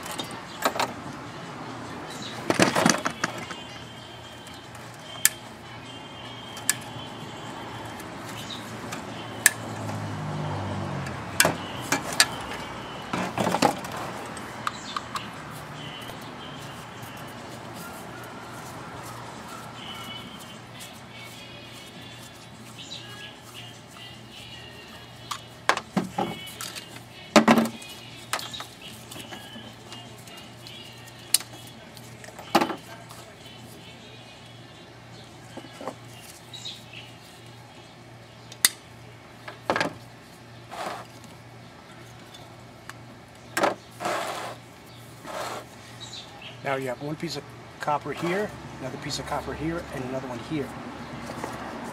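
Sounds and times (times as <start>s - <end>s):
faint background music: 0.0s - 51.9s.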